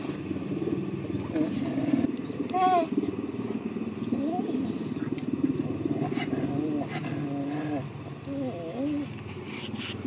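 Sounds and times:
dog grumbling and whining: 0:05.6 - 0:09.1.

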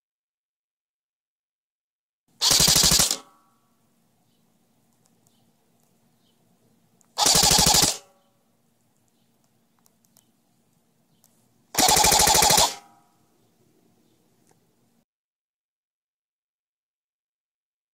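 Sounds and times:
airsoft gun full-auto bursts: 0:02.4 - 0:03.3, 0:07.2 - 0:08.1, 0:11.7 - 0:13.0.

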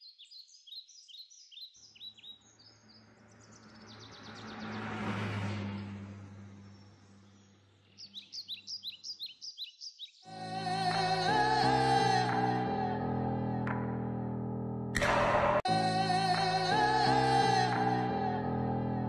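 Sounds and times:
birds chirping: 0:00.0 - 0:10.3
whooshing with low hum: 0:03.0 - 0:07.6.

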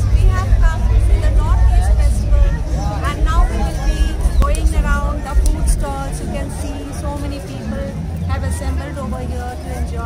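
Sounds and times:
heavy low rumble: 0:00.0 - 0:08.7
crowd chatter: 0:00.0 - 0:10.0
woman talking: 0:00.0 - 0:10.0.

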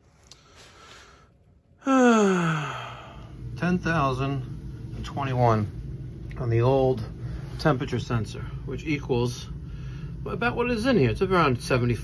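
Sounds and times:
man sighing: 0:01.8 - 0:03.4.

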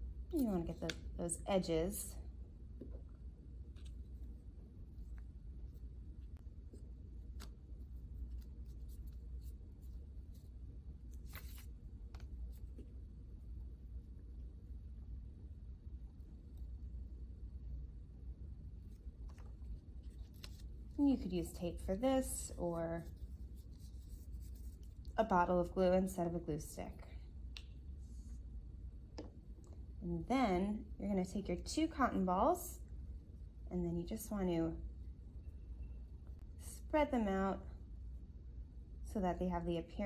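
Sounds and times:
low room hum: 0:00.0 - 0:40.0.

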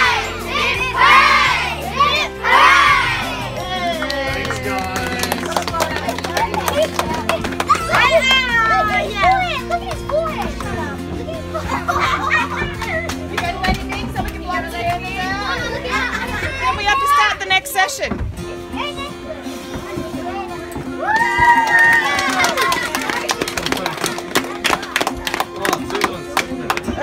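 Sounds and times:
children cheering: 0:00.0 - 0:03.4, 0:21.0 - 0:23.4
children shouting in unison: 0:00.0 - 0:03.6
children talking and calling out: 0:00.0 - 0:04.2, 0:05.6 - 0:25.3.

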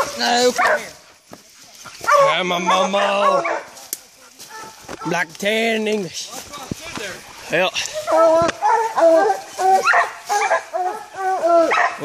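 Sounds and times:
hounds bawling barks: 0:00.0 - 0:01.0, 0:02.0 - 0:03.8, 0:04.4 - 0:05.3, 0:07.8 - 0:12.0.

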